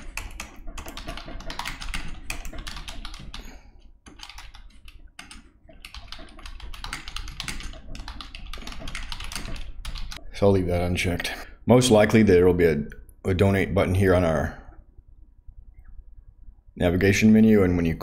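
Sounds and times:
computer keyboard typing: 0:00.0 - 0:10.2.

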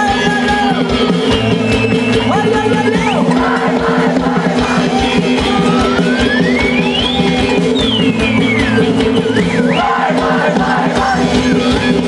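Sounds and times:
folk band music with drone: 0:00.0 - 0:12.0.

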